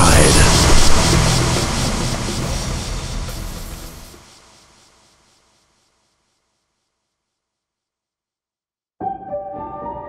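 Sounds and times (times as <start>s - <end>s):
low droning rumble: 0.0s - 4.9s
hiss: 0.0s - 6.6s.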